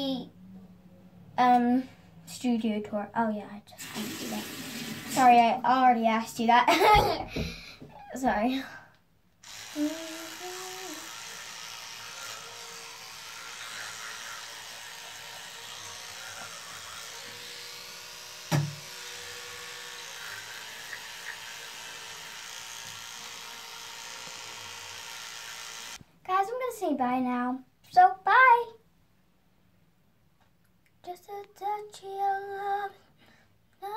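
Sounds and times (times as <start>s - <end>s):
electric toothbrush running: 9.4s - 26.0s
sharp knock: 18.5s - 18.8s.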